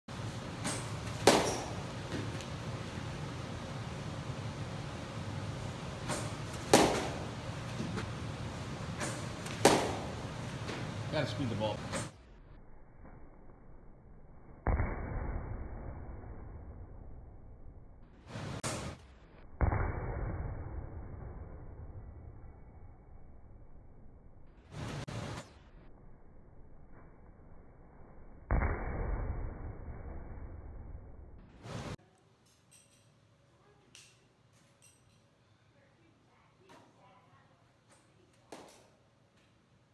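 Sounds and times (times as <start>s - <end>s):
low rumble of background noise: 0.1s - 28.6s
bat cracking a ball: 0.6s - 2.5s, 6.0s - 8.2s, 8.9s - 10.9s.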